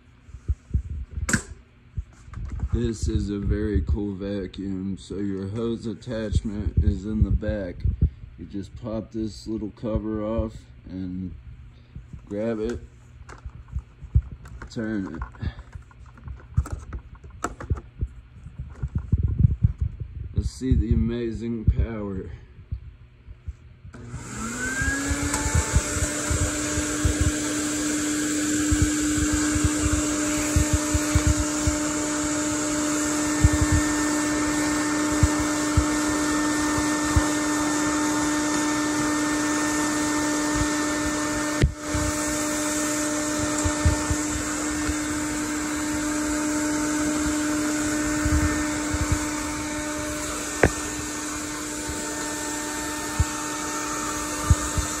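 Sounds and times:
vacuum cleaner running: 0:23.9 - 0:55.0.

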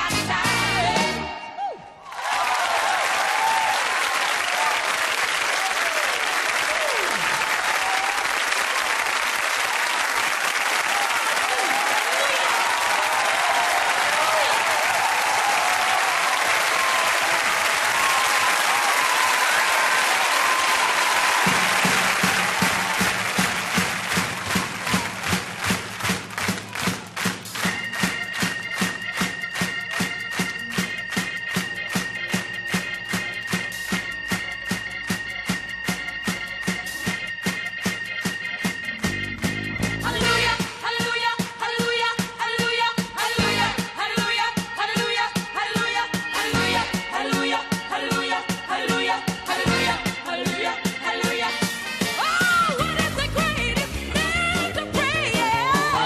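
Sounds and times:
music: 0:00.0 - 0:02.0, 0:12.8 - 0:56.0
audience applauding and cheering: 0:01.7 - 0:34.8
rhythmic clapping: 0:02.1 - 0:47.1.

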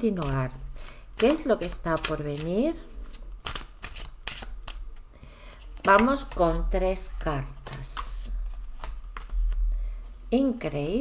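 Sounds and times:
woman speaking: 0:00.0 - 0:00.6, 0:01.2 - 0:02.9, 0:05.8 - 0:08.4, 0:10.3 - 0:11.0
cards being shuffled: 0:00.2 - 0:06.6, 0:07.4 - 0:09.6.

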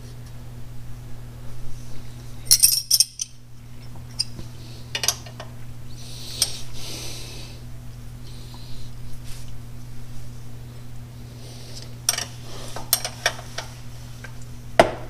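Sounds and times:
wrench clinking on metal nuts: 0:02.5 - 0:03.4.

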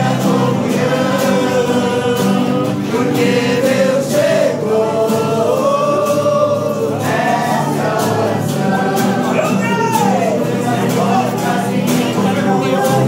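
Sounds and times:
acoustic guitars strumming: 0:00.0 - 0:13.0
group singing a hymn: 0:00.0 - 0:13.0.

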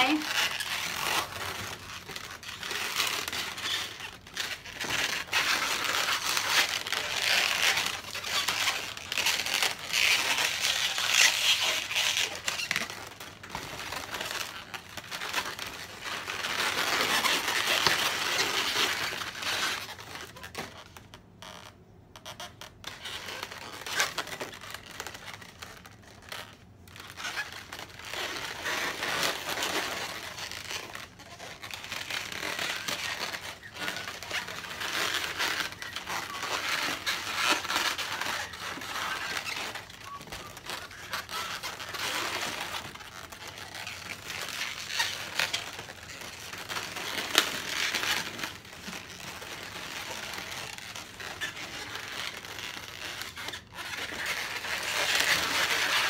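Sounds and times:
balloons rubbing together: 0:00.0 - 0:56.0.

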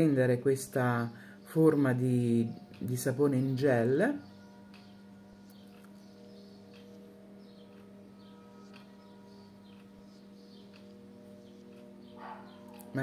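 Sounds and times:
quiet steady hum: 0:00.0 - 0:13.0.

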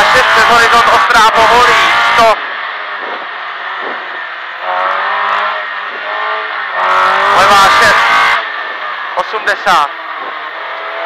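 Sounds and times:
rally car engine at full throttle: 0:00.0 - 0:11.0.

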